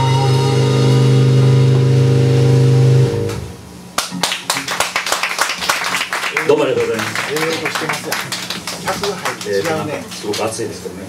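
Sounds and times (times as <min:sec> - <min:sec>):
rock band final chord: 0:00.0 - 0:03.5
audience applauding: 0:04.0 - 0:10.7.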